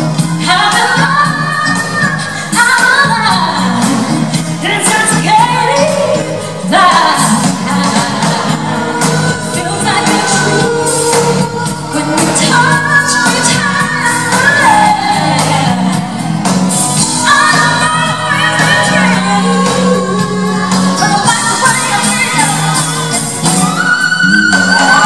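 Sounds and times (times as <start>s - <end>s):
band with keyboards and bass: 0.0s - 25.0s
women singing pop vocals: 0.0s - 25.0s.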